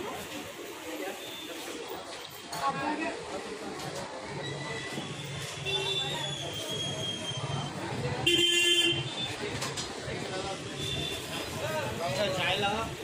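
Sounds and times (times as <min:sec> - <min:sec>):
murmur of voices: 0:00.0 - 0:13.0
vehicle horn honk: 0:08.3 - 0:09.1.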